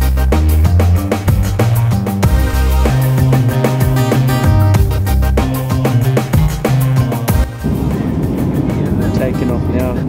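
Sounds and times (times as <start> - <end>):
music: 0.0 - 10.0
jet engines rumbling: 0.6 - 10.0.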